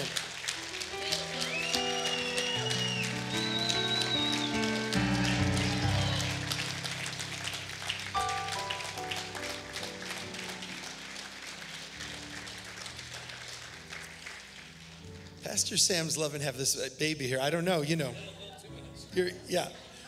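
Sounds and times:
congregation clapping: 0.0 - 16.2
soft music with sustained chords: 0.0 - 20.0.

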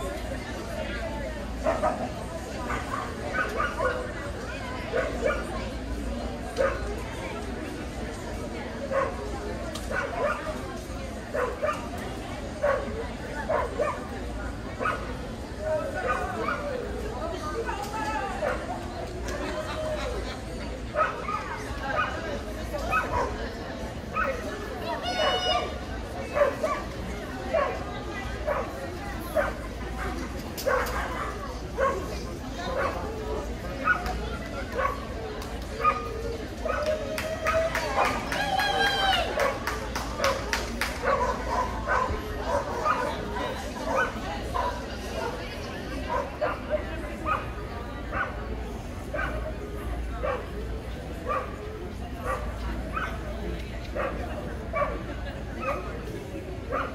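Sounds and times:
background chatter: 0.0 - 56.9
dog barking: 2.7 - 4.0, 29.4 - 32.1, 41.0 - 43.2, 54.0 - 55.0.

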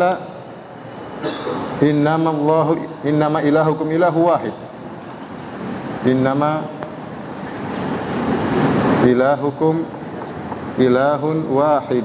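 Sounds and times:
rushing hiss-like noise: 7.0 - 10.8.

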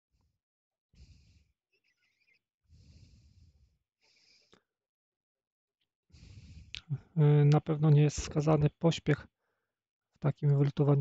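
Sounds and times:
person breathing: 1.0 - 1.6, 2.7 - 4.7, 6.1 - 7.2, 9.4 - 9.8.

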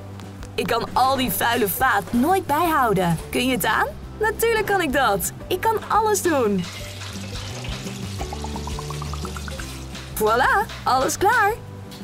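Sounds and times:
background music: 0.0 - 12.0
tap water running into sink: 6.6 - 10.0.

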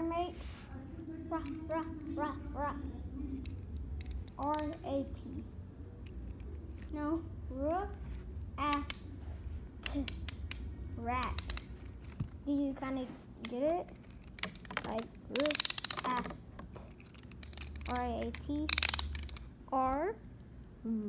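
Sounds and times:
clicks of plastic toy parts: 3.4 - 4.8, 9.8 - 12.3, 13.4 - 19.5.

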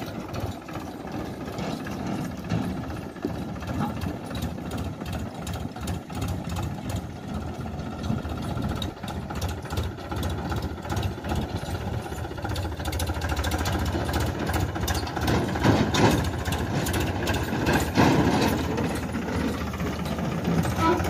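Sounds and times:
tractor diesel engine chugging: 0.0 - 21.0.

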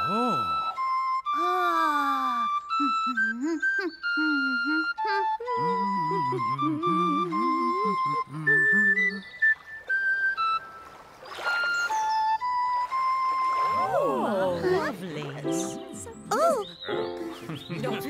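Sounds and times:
ocarina playing slow tune: 2.7 - 14.0
person laughing: 2.8 - 9.2, 16.2 - 18.0.

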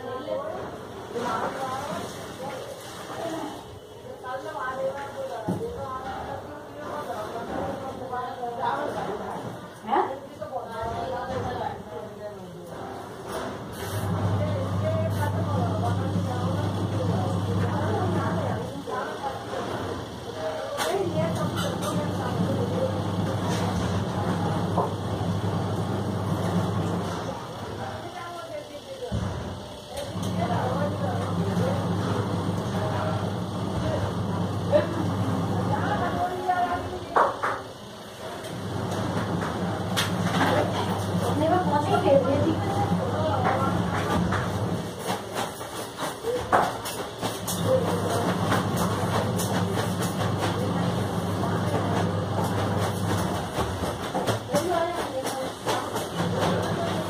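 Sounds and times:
people talking: 0.0 - 57.0.

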